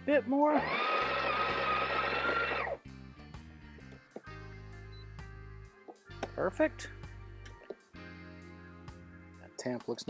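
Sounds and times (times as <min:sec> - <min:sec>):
background music: 0:00.0 - 0:10.0
coffee grinder whining: 0:00.4 - 0:02.8.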